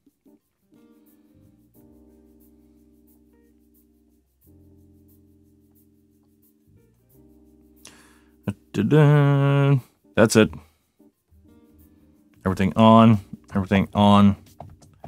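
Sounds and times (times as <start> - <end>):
sustained keyboard chords: 0.0 - 15.0.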